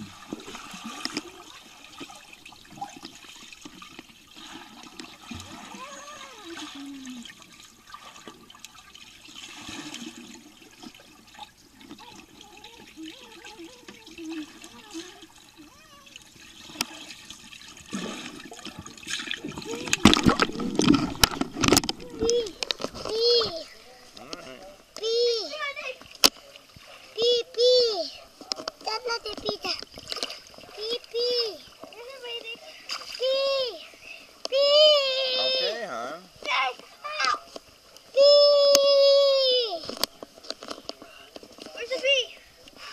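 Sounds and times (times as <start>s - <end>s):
underwater bubbling and gurgling: 0.0s - 25.0s
water splashing: 0.0s - 42.9s
faint muffled voices: 18.4s - 29.8s.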